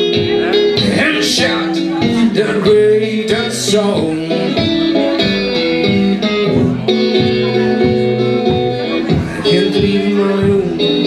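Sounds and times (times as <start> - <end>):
electric guitar playing blues: 0.0 - 11.0.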